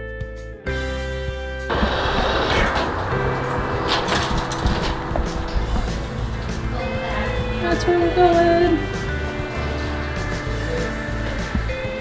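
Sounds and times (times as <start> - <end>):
sliding doors rushing noise: 1.7 - 12.0.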